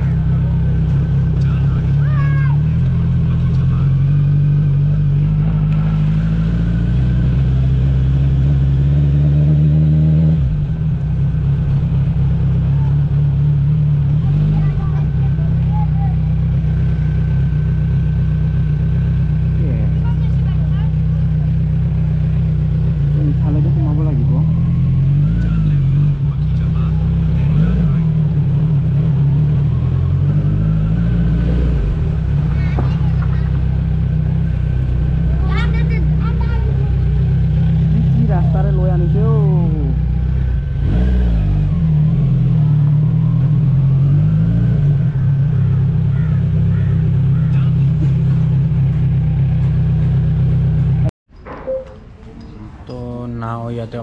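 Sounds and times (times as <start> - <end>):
motorcycle engine running: 0.0 - 51.1
faint voices: 45.2 - 48.6.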